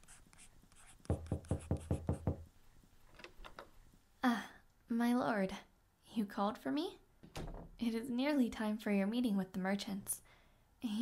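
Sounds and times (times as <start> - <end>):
pen scratching on paper: 0.0 - 2.2
knocking on wooden door: 1.1 - 2.5.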